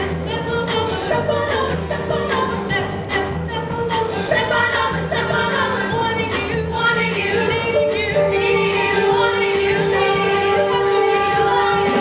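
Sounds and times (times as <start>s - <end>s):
live pit band: 0.0s - 12.0s
women singing: 0.0s - 12.0s.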